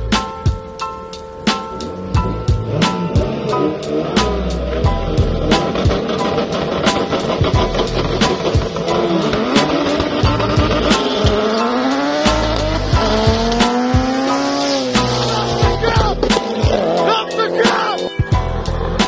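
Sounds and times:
background music with steady beat: 0.0 - 19.0
racing car engines accelerating: 1.8 - 19.0.

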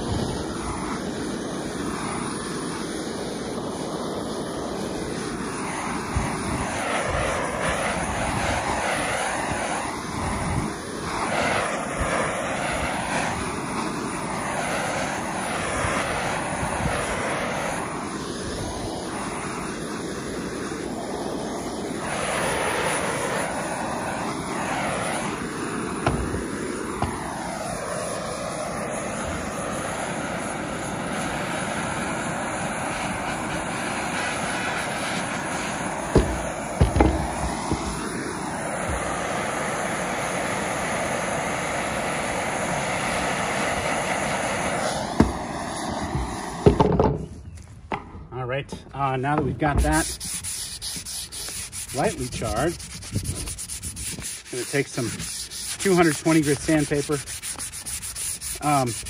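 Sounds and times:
propane torch hissing: 0.0 - 47.5, 49.0 - 59.0.

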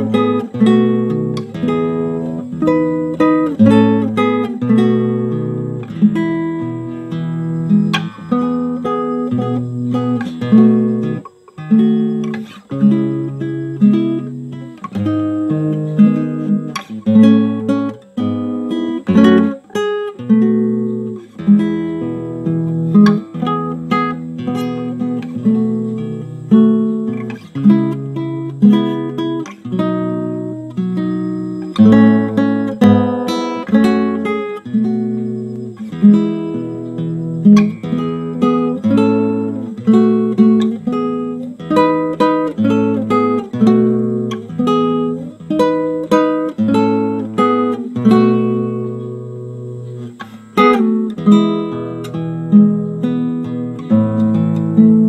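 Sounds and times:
classical guitar fingerstyle: 0.0 - 55.0.

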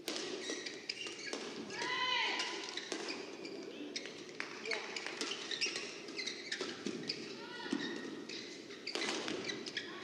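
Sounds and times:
murmur of indoor hall: 0.0 - 10.0
shoes squeaking on court: 0.1 - 1.7, 2.5 - 10.0.

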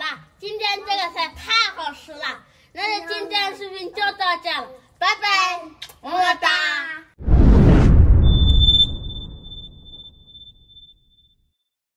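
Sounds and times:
whoosh with deep rumble: 7.2 - 10.8
high ringing tone: 8.2 - 11.2.

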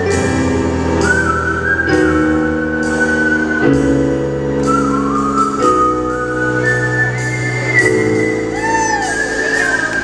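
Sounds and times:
piano chords: 0.0 - 10.0
whistled melody: 0.8 - 10.0.

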